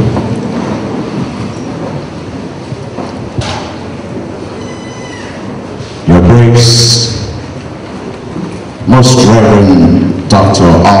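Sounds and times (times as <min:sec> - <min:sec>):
large hall background hiss and rumble: 0:00.0 - 0:11.0
faint high squeal: 0:04.6 - 0:05.5.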